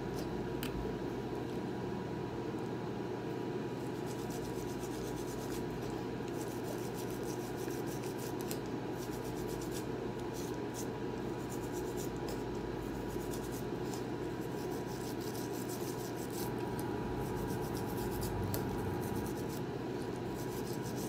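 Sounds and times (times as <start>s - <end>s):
steady room hum: 0.0s - 21.0s
toothbrush bristle scrubbing: 4.0s - 16.6s, 17.2s - 21.0s.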